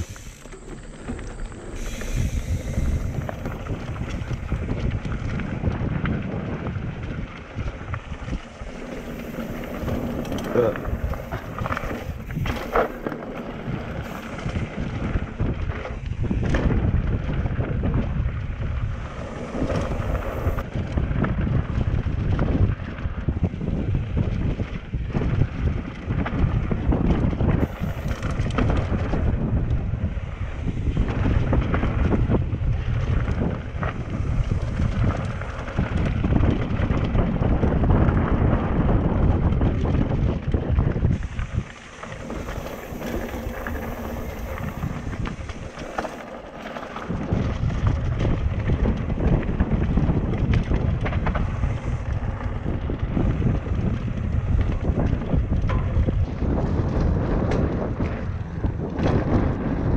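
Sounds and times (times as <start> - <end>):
tyres rumbling on dirt: 0.0 - 20.6, 33.0 - 59.9
bike rattling: 0.0 - 59.9
wind buffeting microphone: 0.0 - 59.9.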